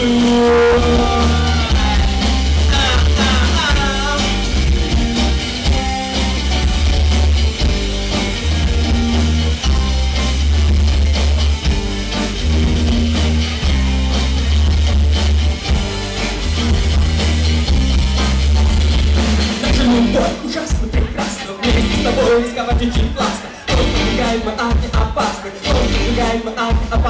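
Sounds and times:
drum kit: 0:00.0 - 0:27.0
electric guitars: 0:00.0 - 0:27.0
heavy bass line: 0:00.0 - 0:27.0.

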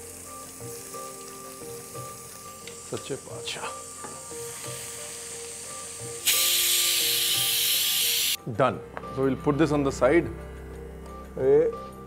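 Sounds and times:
spices frying in hot ghee: 0:00.0 - 0:08.4
soft background music: 0:00.0 - 0:12.0.

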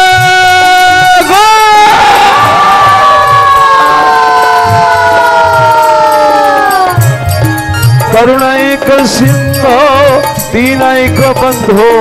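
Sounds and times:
crowd noise: 0:00.9 - 0:12.0
low drum beats: 0:01.9 - 0:11.8.

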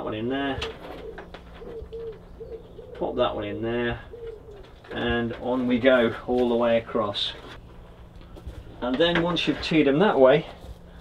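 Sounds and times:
pigeon cooing: 0:00.5 - 0:05.1.

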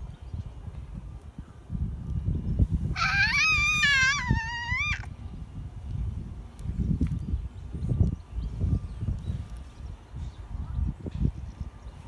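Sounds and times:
wind noise on microphone: 0:00.0 - 0:12.0
toddler squealing: 0:03.0 - 0:05.1.

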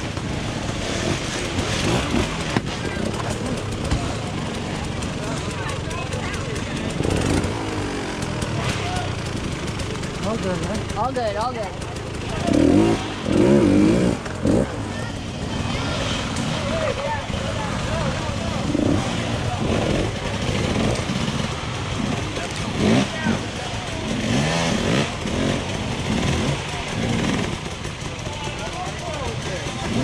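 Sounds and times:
dirt bike engines revving: 0:00.0 - 0:30.0
spectators talking: 0:00.0 - 0:30.0.

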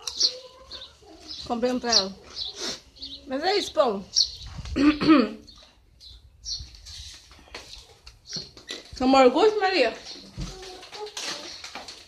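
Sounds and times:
high bird chirps: 0:00.0 - 0:04.7, 0:05.4 - 0:06.8.

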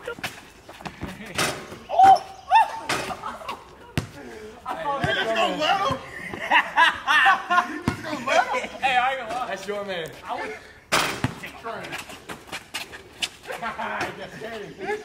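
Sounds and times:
rim and backboard rattling: 0:01.0 - 0:01.8, 0:10.9 - 0:11.6
players shouting: 0:01.7 - 0:09.3
basketball bouncing: 0:04.0 - 0:04.2, 0:07.8 - 0:08.1, 0:10.9 - 0:11.5.

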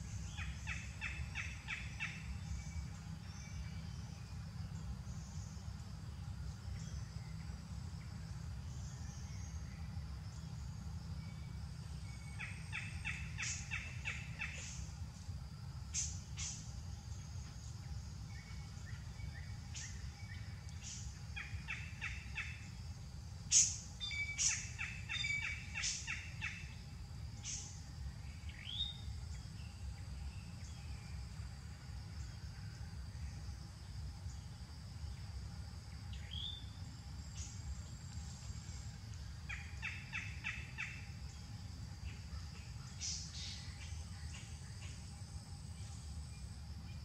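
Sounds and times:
faint high insect drone: 0:00.0 - 0:47.0
low steady rumble: 0:00.0 - 0:47.0.

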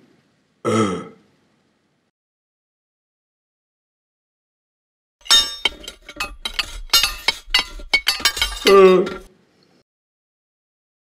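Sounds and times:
glassy clinks and knocks: 0:05.2 - 0:09.3.

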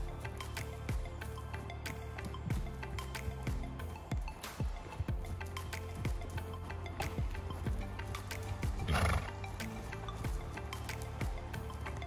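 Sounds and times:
background music with steady beat: 0:00.0 - 0:12.0
horse whinny: 0:08.8 - 0:09.4.

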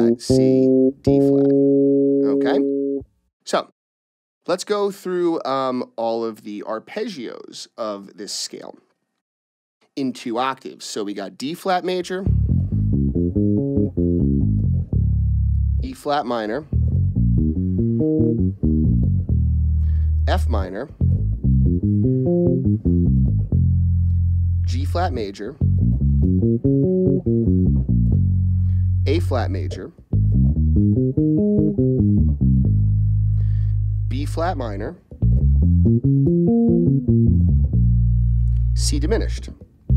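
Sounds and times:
electric bass descending arpeggio: 0:00.0 - 0:03.0, 0:12.3 - 0:15.9, 0:16.8 - 0:39.3.

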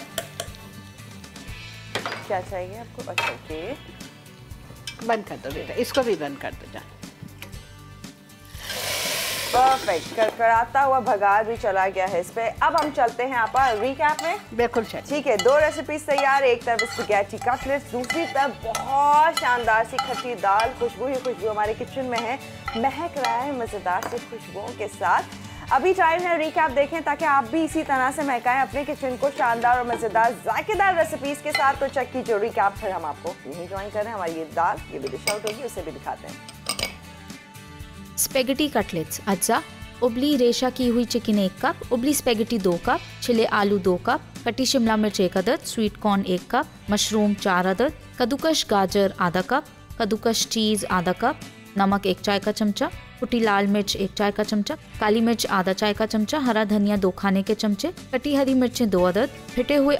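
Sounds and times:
background music: 0:00.0 - 0:59.9
hot oil sizzling in pan: 0:08.4 - 0:10.2
utensil clinking against glass bowl: 0:12.7 - 0:21.4, 0:22.1 - 0:24.1, 0:31.4 - 0:31.9, 0:35.0 - 0:35.8, 0:36.4 - 0:37.0.

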